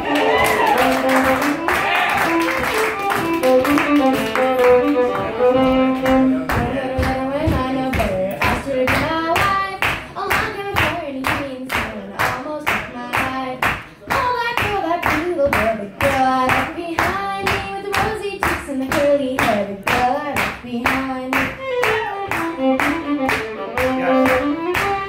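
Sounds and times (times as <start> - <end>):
hand clapping in time: 0.2 - 5.2, 9.8 - 25.0
woman singing: 6.2 - 23.0.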